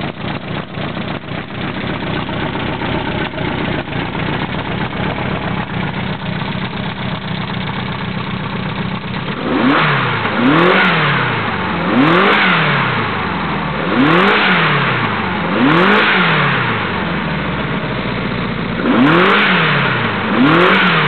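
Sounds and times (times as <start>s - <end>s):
car engine revving and idling: 0.0s - 21.0s.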